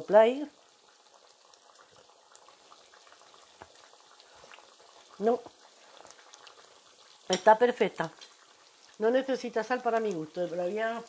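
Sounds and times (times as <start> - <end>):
stew bubbling in a pot: 0.0 - 11.0.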